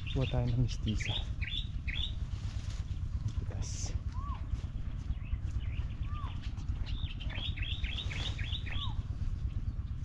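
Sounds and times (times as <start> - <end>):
bird chirps down-slurred: 0.0 - 2.2, 5.7 - 9.1
steady low rumble: 0.0 - 10.0
bird arched whistle: 7.4 - 9.0.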